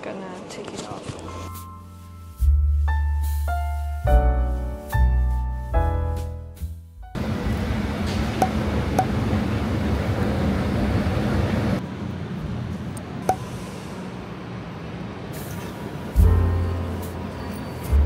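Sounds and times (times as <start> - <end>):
soft piano music: 1.6 - 7.3, 16.1 - 18.0
city noise rushing: 7.2 - 18.0.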